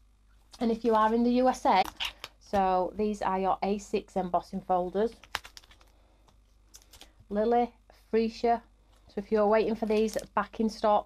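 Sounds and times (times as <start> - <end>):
plastic folders clicking and crinkling: 5.1 - 7.2, 9.7 - 10.4.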